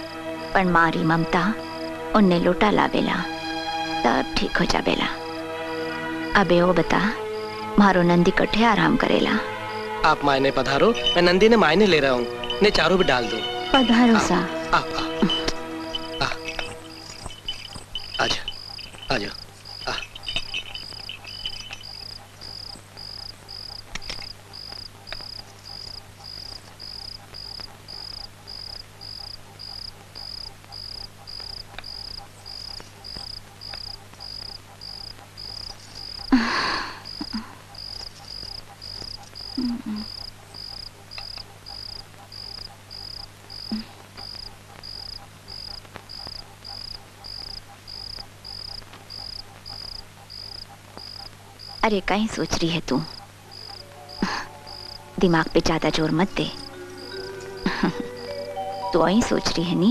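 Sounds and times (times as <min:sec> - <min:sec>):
crickets chirping: 0:00.0 - 0:59.9
low steady hum: 0:00.0 - 0:59.9.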